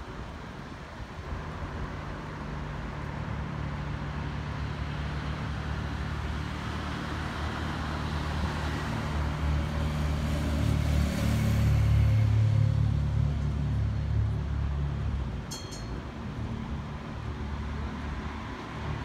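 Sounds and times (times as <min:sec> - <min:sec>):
street traffic: 0:00.0 - 0:19.0.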